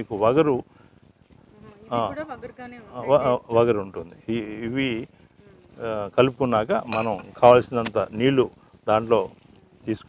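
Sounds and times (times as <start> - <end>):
man talking: 0.0 - 0.6, 1.9 - 2.2, 3.0 - 5.1, 5.8 - 10.0
flying insect buzzing: 1.4 - 6.6.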